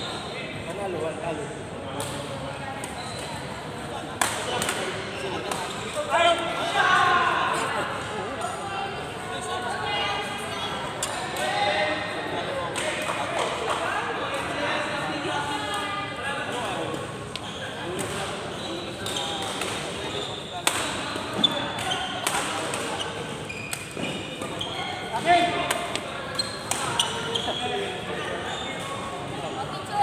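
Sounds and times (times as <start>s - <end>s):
chatter of voices in a hall: 0.0s - 30.0s
shoes squeaking on court floor: 2.8s - 3.5s, 20.0s - 22.2s, 22.8s - 25.2s, 25.9s - 29.1s.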